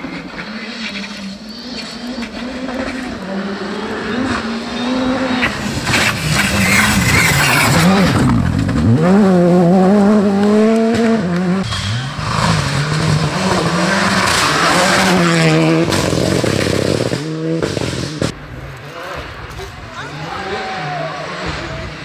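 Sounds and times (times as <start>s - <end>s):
rally car engines revving: 0.0s - 22.0s.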